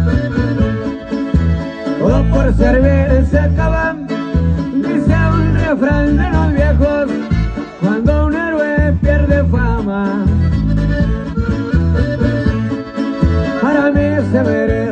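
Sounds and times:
button accordion melody: 0.0 - 14.9
live band playing: 0.0 - 14.9.

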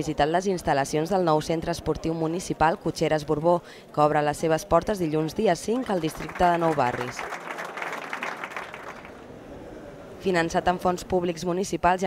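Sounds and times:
applause: 5.7 - 9.2.

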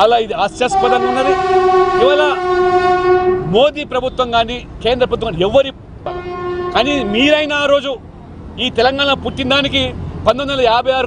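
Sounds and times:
man's voice: 0.0 - 1.4, 6.8 - 8.0
vehicle horn long blast: 0.6 - 3.6, 6.1 - 7.2.

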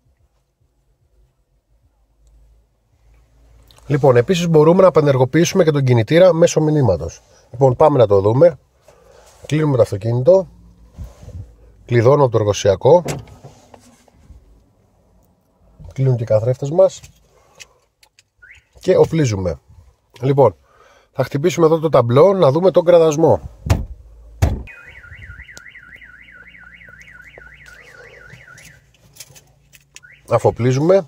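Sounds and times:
car alarm siren warbling: 24.7 - 28.9, 30.0 - 30.5.

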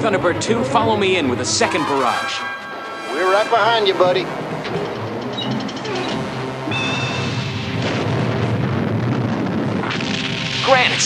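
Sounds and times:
background music: 0.0 - 11.0
high whistling tone: 1.4 - 7.3
rockets launching rumble: 7.2 - 11.0.

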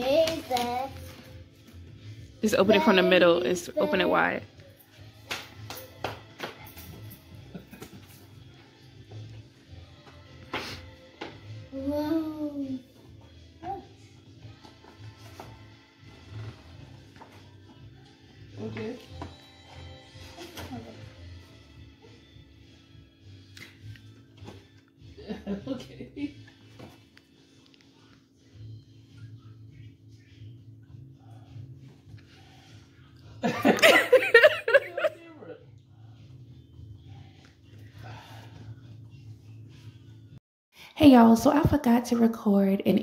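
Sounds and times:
background music with low beat: 0.0 - 40.4.

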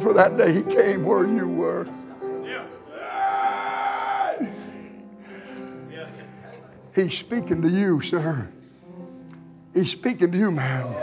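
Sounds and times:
soft instrumental music: 0.0 - 11.0
person shouting long cry: 2.9 - 4.7.

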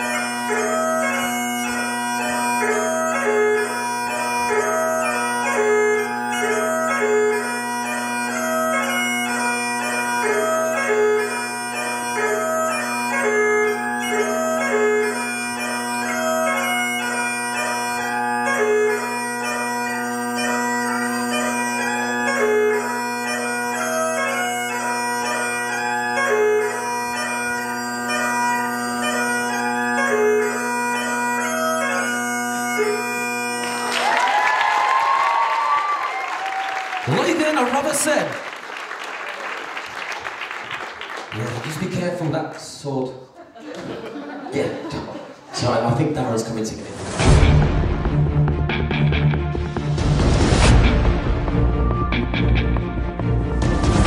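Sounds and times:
bagpipe tune over drones: 0.0 - 37.7, 47.1 - 54.0
audience applause and cheering: 33.6 - 42.4, 47.2 - 54.0.

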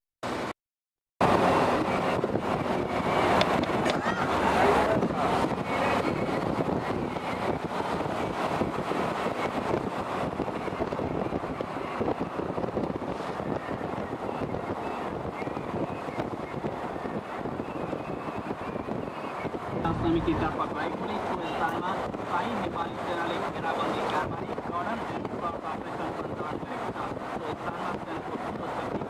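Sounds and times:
vehicle road and wind noise: 0.2 - 0.5, 1.2 - 29.0.

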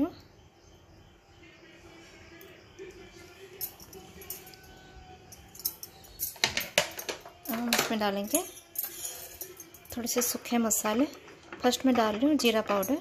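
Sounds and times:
metallic clinks of kitchen utensils: 3.6 - 13.0.

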